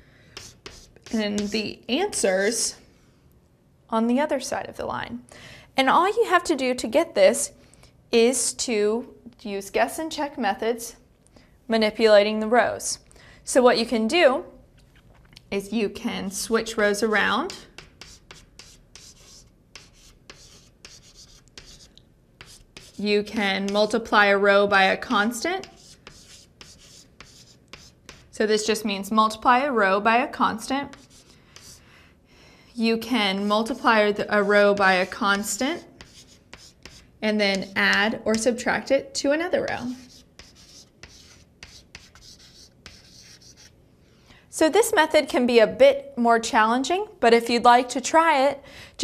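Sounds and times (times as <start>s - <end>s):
chalk scratching on blackboard: 0.4s - 2.7s, 17.2s - 24.0s, 25.6s - 28.4s, 30.9s - 31.8s, 33.4s - 37.7s, 39.7s - 43.8s.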